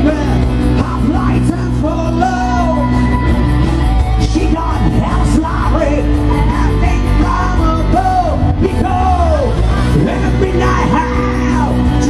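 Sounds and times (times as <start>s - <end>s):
man singing and yelling: 0.0s - 12.0s
rock band playing loud: 0.0s - 12.0s.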